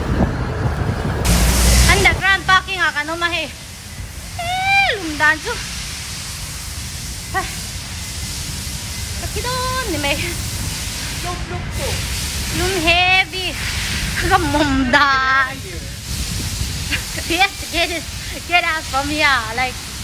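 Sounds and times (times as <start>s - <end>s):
low rumbling background noise: 0.0s - 20.0s
woman speaking: 1.8s - 3.6s, 4.4s - 5.6s, 9.2s - 10.4s, 11.2s - 13.6s, 14.2s - 15.8s, 17.2s - 19.8s.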